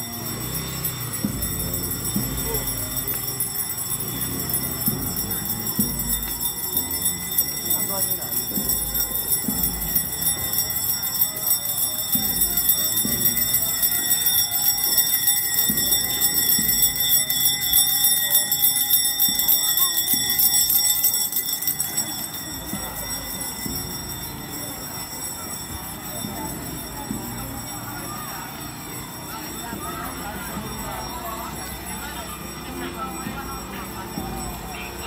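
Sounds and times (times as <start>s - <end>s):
handbell ringing: 0.0s - 35.0s.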